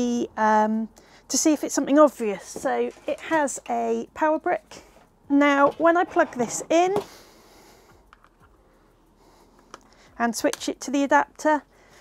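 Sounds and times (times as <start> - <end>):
soft breath-like hiss: 7.0 - 10.2, 11.6 - 12.0.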